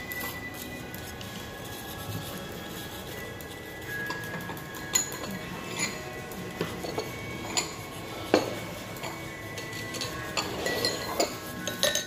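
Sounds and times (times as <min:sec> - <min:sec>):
chopsticks clinking metal bowl: 0:03.4 - 0:12.0.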